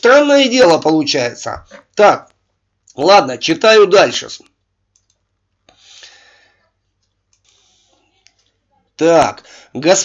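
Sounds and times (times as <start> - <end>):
faint computer mouse clicks: 4.9 - 5.8, 7.0 - 8.5.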